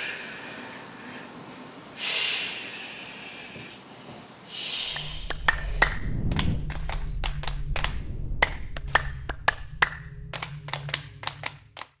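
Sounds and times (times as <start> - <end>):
low steady hum: 4.9 - 12.0
low swell: 4.9 - 12.0
sharp clicks and ticks: 4.9 - 12.0.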